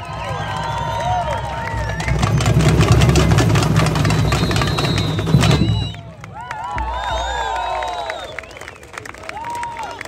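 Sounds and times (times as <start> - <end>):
samba percussion with shakers: 0.0 - 7.7.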